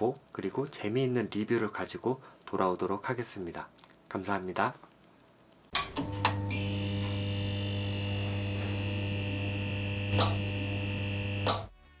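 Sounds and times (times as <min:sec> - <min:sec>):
crackling flicker clicks: 0:00.0 - 0:09.0, 0:10.0 - 0:10.6
neon sign electrical hum: 0:00.0 - 0:11.7
high electrical buzz: 0:05.7 - 0:11.7.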